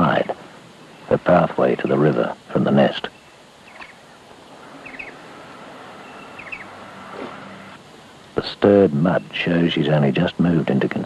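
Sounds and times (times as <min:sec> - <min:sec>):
outdoor ambience hiss: 0:00.0 - 0:11.0
high bird chirps: 0:03.1 - 0:07.8.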